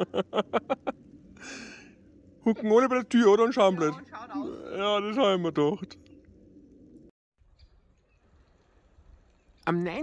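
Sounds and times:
person laughing: 0:00.0 - 0:01.0
breathy exhale: 0:01.4 - 0:02.1.

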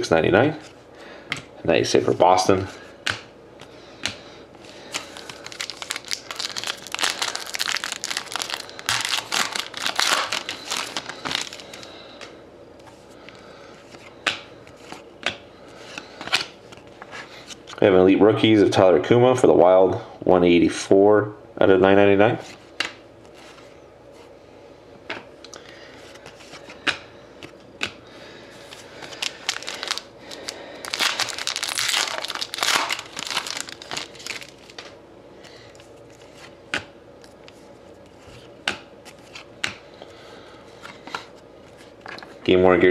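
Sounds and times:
foil wrapper crinkling: 0:04.7 - 0:12.0, 0:29.0 - 0:34.9.

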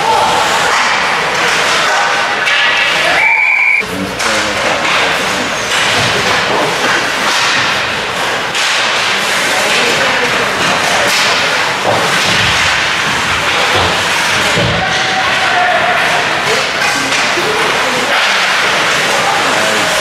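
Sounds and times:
hockey sticks cracking on puck: 0:00.3 - 0:03.2, 0:04.1 - 0:20.0
skates scraping ice: 0:04.2 - 0:20.0
spectators shouting: 0:14.2 - 0:16.5.

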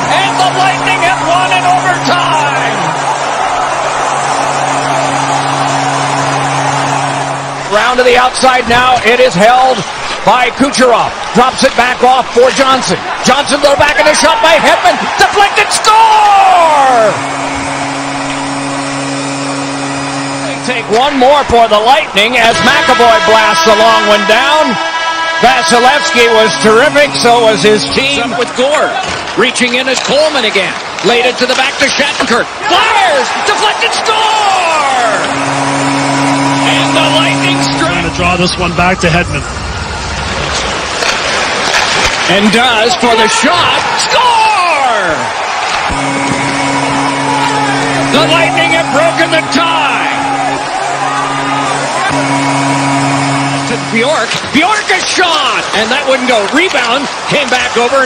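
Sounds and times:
goal horn blaring low tone: 0:00.0 - 0:29.4, 0:30.8 - 0:39.6, 0:41.0 - 0:58.0
crowd noise: 0:00.0 - 0:58.0.

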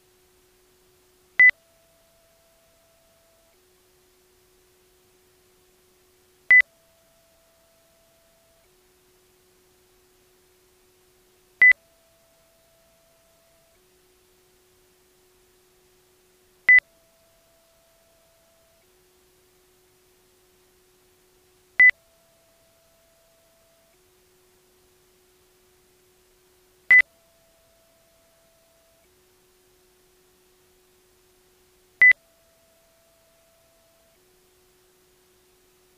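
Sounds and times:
faint steady tone: 0:00.0 - 0:35.9.

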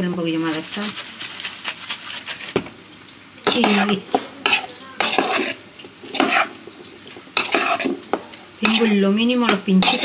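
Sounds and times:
lettuce tossed in a bowl: 0:00.3 - 0:02.7
metal spoon scraping a bowl: 0:03.5 - 0:06.6, 0:07.4 - 0:09.0, 0:09.8 - 0:10.0.

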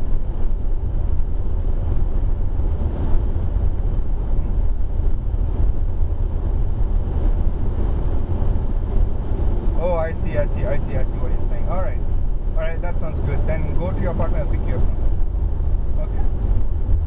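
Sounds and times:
car driving on slushy road: 0:00.0 - 0:17.0.

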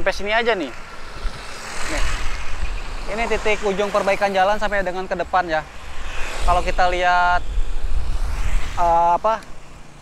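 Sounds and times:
vehicle passing: 0:00.0 - 0:10.0
wind rumble on microphone: 0:00.0 - 0:10.0.

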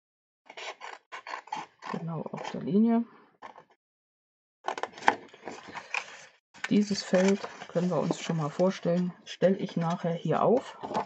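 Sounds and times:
paper rustling: 0:04.7 - 0:08.9.

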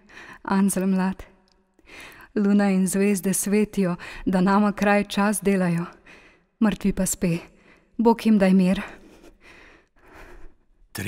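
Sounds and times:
person breathing softly: 0:01.8 - 0:02.3, 0:08.9 - 0:10.7.

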